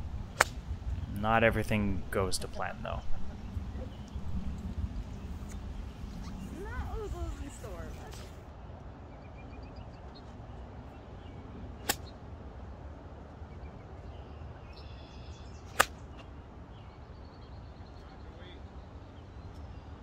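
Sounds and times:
wind rumble on microphone: 0:00.0 - 0:08.4
faint birds chirping: 0:00.0 - 0:20.0.

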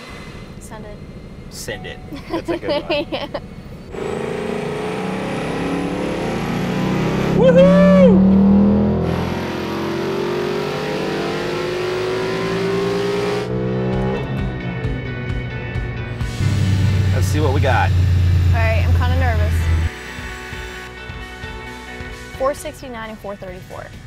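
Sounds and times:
dyno rollers winding down: 0:00.0 - 0:15.4, 0:16.0 - 0:19.9
car engine revving on dyno: 0:03.6 - 0:19.9.

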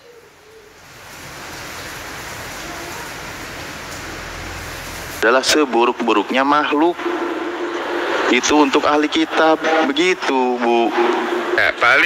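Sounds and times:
steady rushing hiss: 0:00.0 - 0:12.0.

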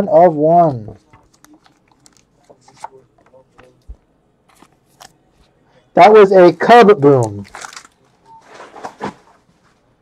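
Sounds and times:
cards and packaging handled: 0:01.0 - 0:05.2, 0:07.2 - 0:08.0.

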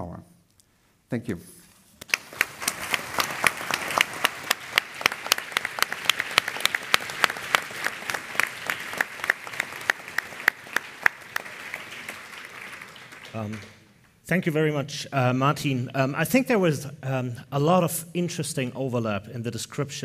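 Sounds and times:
audience applauding: 0:02.0 - 0:14.0
sharp individual claps: 0:02.0 - 0:14.1.

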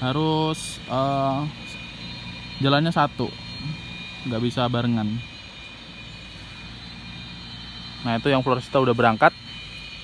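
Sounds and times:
thin high-pitched hum: 0:00.0 - 0:10.0.

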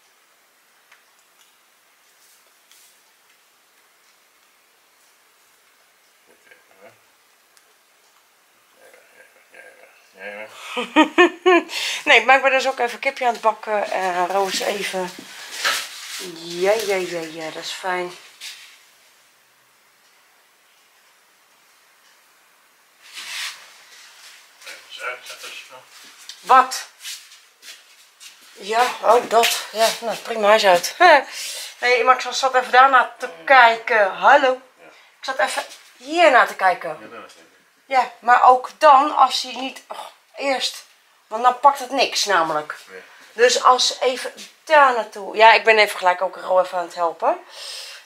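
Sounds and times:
hissing rustle: 0:00.9 - 0:10.8, 0:11.7 - 0:19.4, 0:22.8 - 0:32.9.

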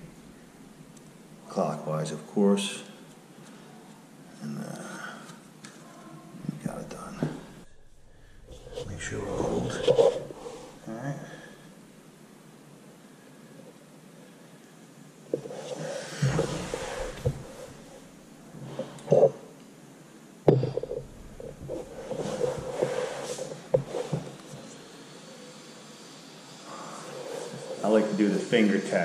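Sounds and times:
wrench scraping and knocking: 0:20.5 - 0:23.0.

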